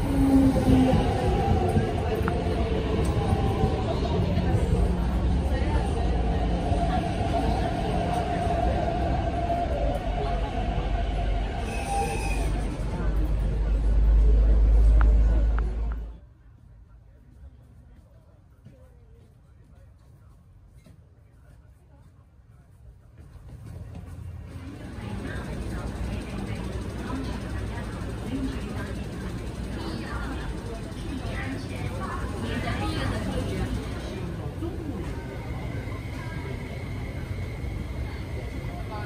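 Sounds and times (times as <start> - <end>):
train deep rumble: 0.0 - 20.7, 22.9 - 39.0
squeal-like tone: 11.6 - 12.7.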